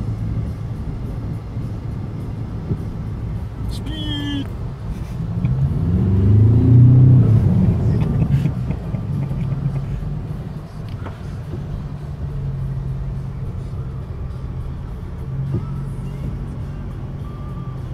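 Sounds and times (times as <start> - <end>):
pickup truck engine revving and droning: 0.0 - 17.9
truck driving through floodwater: 0.0 - 17.9.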